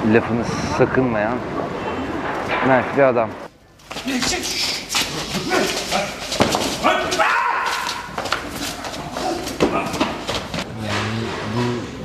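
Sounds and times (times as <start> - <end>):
men shouting: 4.1 - 10.2.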